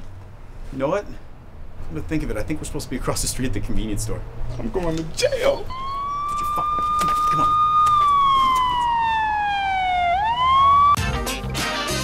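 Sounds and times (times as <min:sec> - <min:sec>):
siren wailing: 0:05.2 - 0:11.0
music with a beat: 0:11.0 - 0:12.0.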